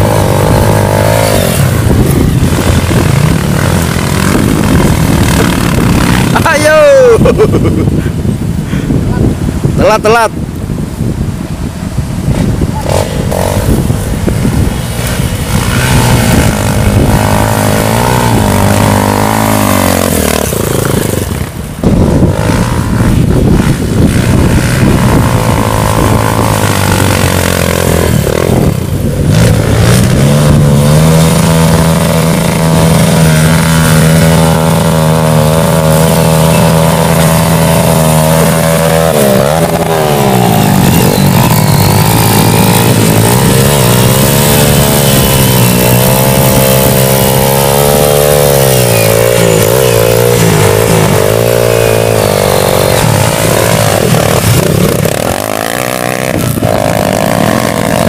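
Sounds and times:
rear wheel spinning in mud: 0:00.0 - 0:06.5, 0:12.9 - 0:58.0
dirt bike engines revving: 0:00.0 - 0:58.0.

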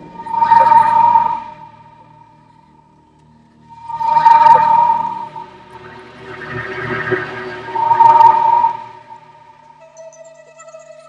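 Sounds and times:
sustained high tone: 0:00.0 - 0:02.6, 0:03.6 - 0:10.2
soft film score music: 0:00.0 - 0:10.4.

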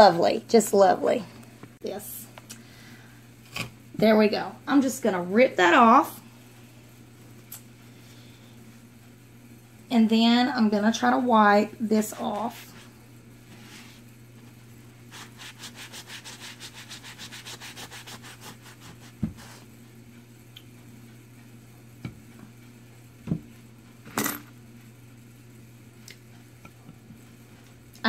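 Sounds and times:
paper towel rubbing on burlap: 0:15.1 - 0:19.7.

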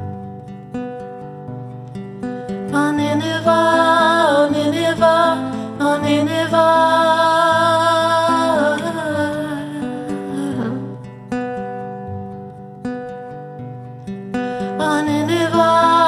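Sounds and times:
fingerpicked classical guitar: 0:00.0 - 0:16.0.

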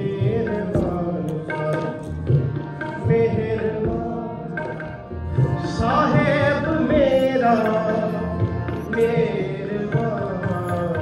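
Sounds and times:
harmonium chords: 0:00.0 - 0:11.0
tabla strokes: 0:00.0 - 0:11.0.

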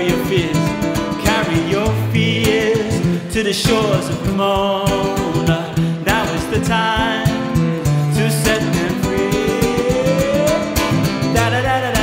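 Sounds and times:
strummed nylon-string acoustic guitar: 0:00.0 - 0:12.0.

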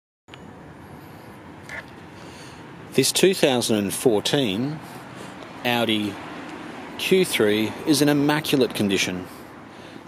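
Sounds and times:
distant traffic rumble: 0:00.3 - 0:10.0.

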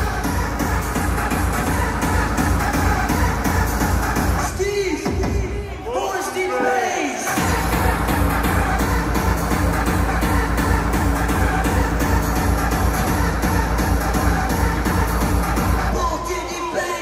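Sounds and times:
hardcore techno over sound system: 0:00.0 - 0:17.0
fast kick drum beat: 0:07.4 - 0:16.0.

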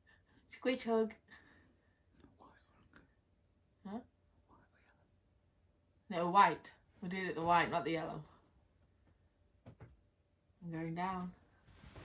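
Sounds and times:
faint whispering: 0:02.2 - 0:03.2, 0:03.8 - 0:05.2.

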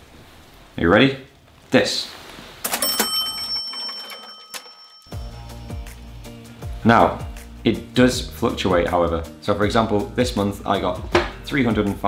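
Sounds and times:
cash register clicks: 0:02.6 - 0:05.1
cash register bell ringing: 0:02.6 - 0:05.2.

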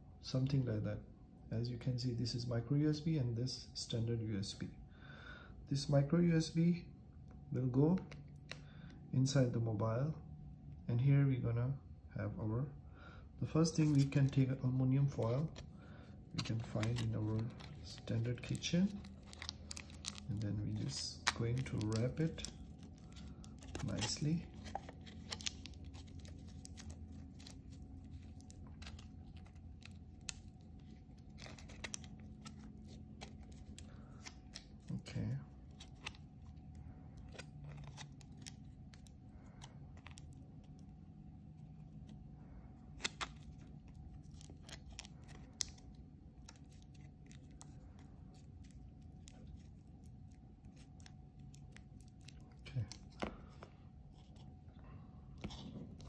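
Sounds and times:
low steady hum: 0:00.0 - 0:56.0
aluminium foil crinkling: 0:15.1 - 0:41.0, 0:42.9 - 0:53.5.

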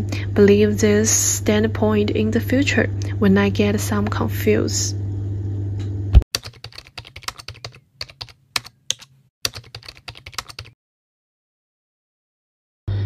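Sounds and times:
keyboard typing: 0:06.3 - 0:10.8.

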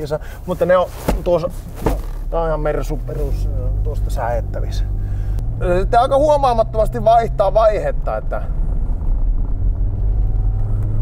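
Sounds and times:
diesel engine drone inside car: 0:00.0 - 0:11.0.

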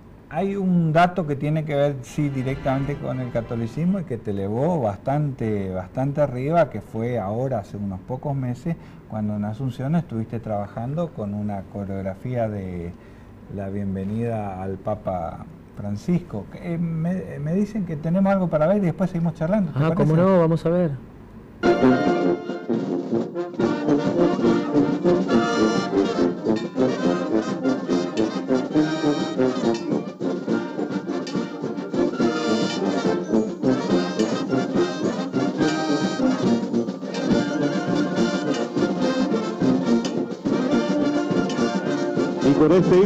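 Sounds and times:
brass band playing: 0:02.1 - 0:04.2, 0:21.6 - 0:43.0.

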